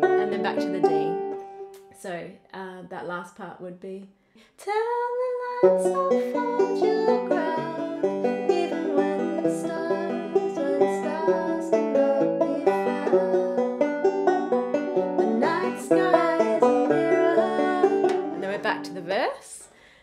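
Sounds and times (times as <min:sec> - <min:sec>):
banjo fingerpicking: 0:00.0 - 0:02.0, 0:05.5 - 0:19.3.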